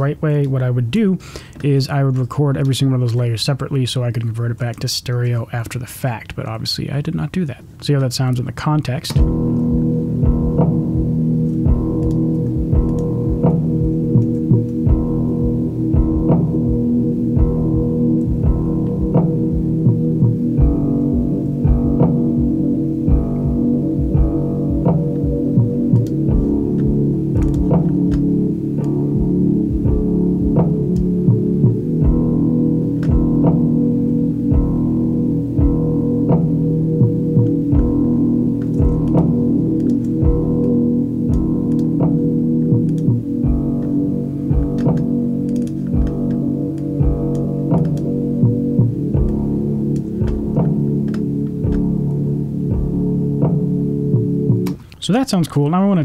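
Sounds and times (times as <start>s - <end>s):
slow low guitar bass and drum music: 9.1s - 54.8s.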